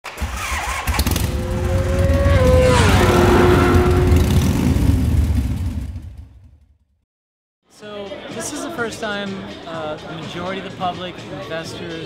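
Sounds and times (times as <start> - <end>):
motorcycle engine running: 0.9 - 6.6.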